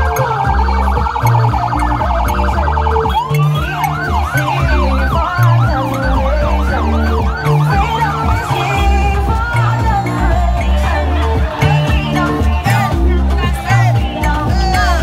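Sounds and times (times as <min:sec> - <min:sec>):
music with heavy bass beat: 0:00.0 - 0:15.0
siren yelping and whooping: 0:00.0 - 0:15.0.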